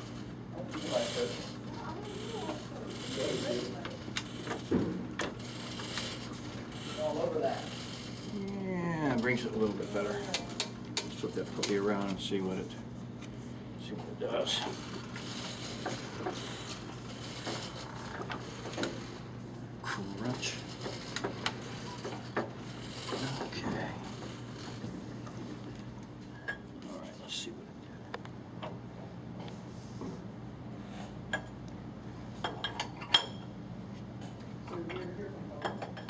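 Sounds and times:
printing press motor hum: 0:00.0 - 0:27.3.

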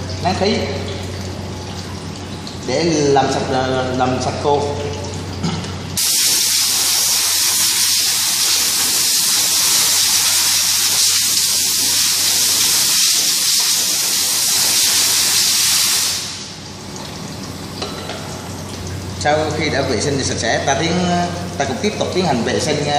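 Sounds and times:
compressed air blow gun hissing: 0:06.0 - 0:16.5.

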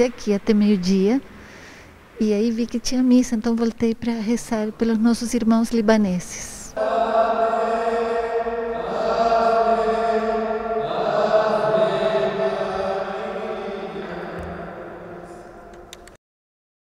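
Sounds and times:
man singing liturgical chant: 0:06.7 - 0:15.9.

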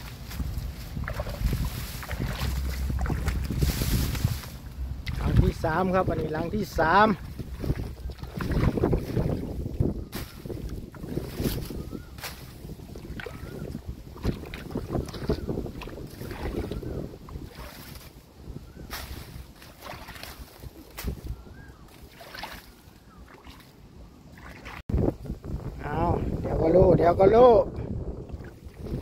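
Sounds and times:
dry reeds crackling: 0:00.0 - 0:22.5
wind buffeting microphone: 0:00.0 - 0:29.0
hand splashing in muddy water: 0:01.0 - 0:04.3, 0:07.2 - 0:09.6, 0:19.0 - 0:20.6, 0:21.8 - 0:24.8.

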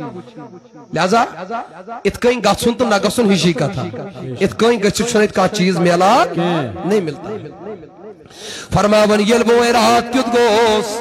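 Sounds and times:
man speaking into a microphone: 0:00.0 - 0:07.6, 0:08.5 - 0:11.0.

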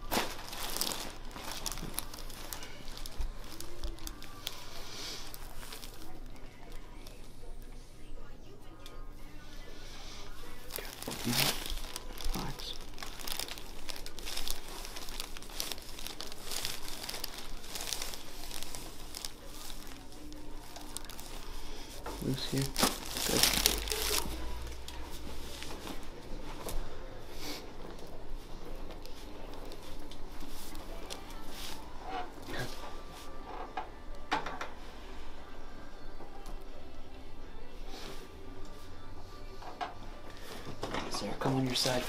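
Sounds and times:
paper crinkling and rustling: 0:00.0 - 0:07.2, 0:10.4 - 0:26.8.

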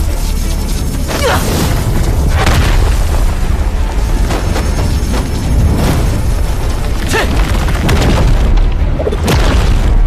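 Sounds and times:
soundtrack music: 0:00.0 - 0:10.0.

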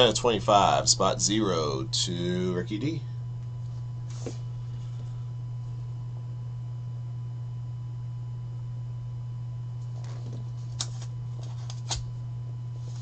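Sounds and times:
low electrical hum: 0:00.0 - 0:13.0
cards clicking and rustling: 0:10.0 - 0:12.0.

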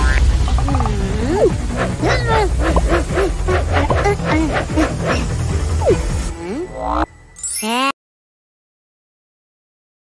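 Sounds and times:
background music: 0:00.0 - 0:07.8
whiny cartoon character voice: 0:00.9 - 0:06.8, 0:07.6 - 0:08.0.

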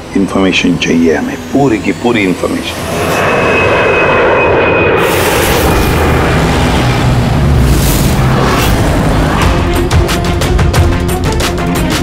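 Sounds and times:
jet airliner engine roar: 0:00.0 - 0:10.8.

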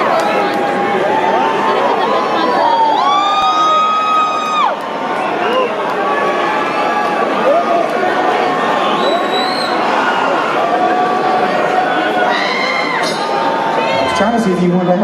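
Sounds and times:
concert crowd cheering: 0:00.0 - 0:15.0.

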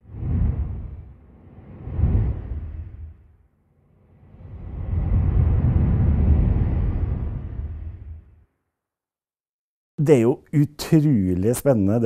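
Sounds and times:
deep rumbling whoosh: 0:00.0 - 0:08.6.

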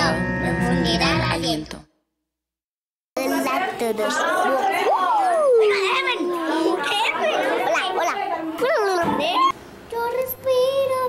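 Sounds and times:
young children chattering: 0:03.2 - 0:11.0.

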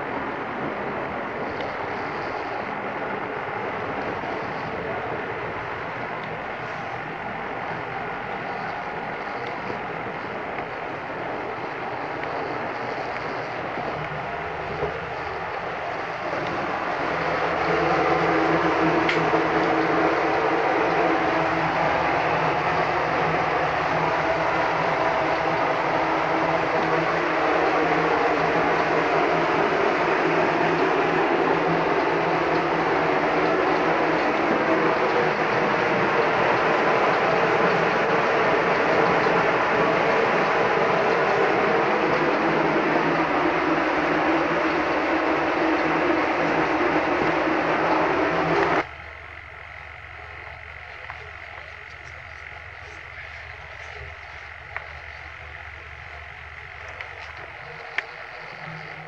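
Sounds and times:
loud steady rushing noise: 0:00.0 - 0:59.0.

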